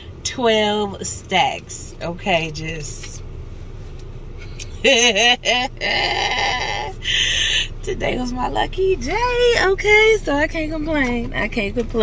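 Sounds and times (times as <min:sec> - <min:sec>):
car cabin hum: 0:00.0 - 0:12.0
woman laughing: 0:04.7 - 0:07.8.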